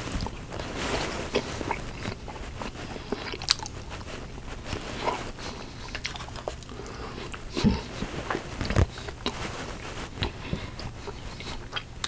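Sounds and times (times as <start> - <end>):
chewing and wet mouth sounds: 0.0 - 12.0
lip smacks: 1.3 - 12.0.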